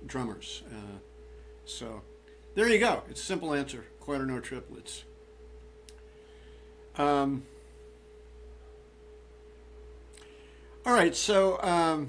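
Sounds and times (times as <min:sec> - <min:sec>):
faint steady pure tone: 0:00.0 - 0:12.0
low hum: 0:00.0 - 0:12.0.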